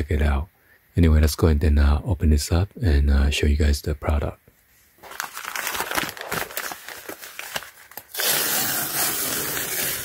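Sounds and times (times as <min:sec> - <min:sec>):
paper bag crinkling: 0:05.0 - 0:10.0
paper bag ripping open: 0:05.0 - 0:10.0.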